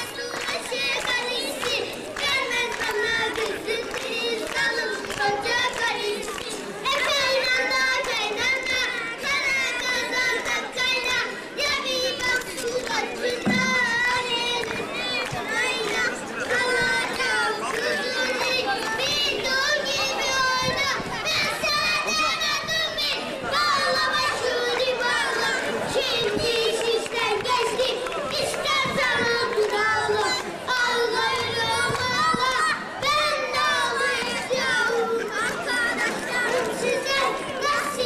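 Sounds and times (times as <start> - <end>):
young children's voices: 0.0 - 38.0.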